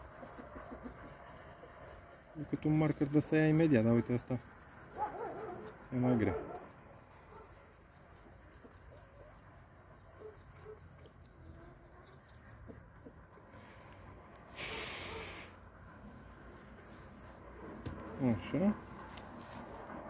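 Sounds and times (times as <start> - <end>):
cloth rubbing on metal plate: 0.0 - 6.0, 7.0 - 13.5.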